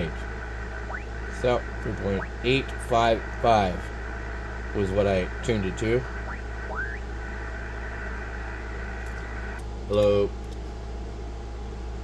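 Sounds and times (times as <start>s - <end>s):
radio receiver hiss: 0.0s - 10.3s
short rising radio whistles: 6.1s - 9.6s.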